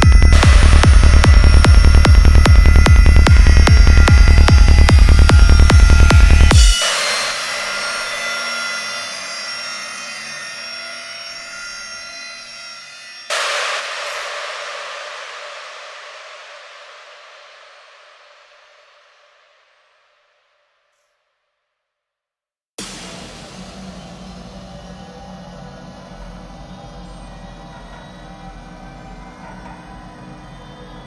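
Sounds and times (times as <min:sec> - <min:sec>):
kick drum and bass: 0:00.0 - 0:07.5
sudden noisy hit: 0:00.0 - 0:12.6, 0:13.3 - 0:19.7, 0:22.8 - 0:31.0
reverberant synth texture: 0:00.0 - 0:20.2, 0:22.8 - 0:31.0.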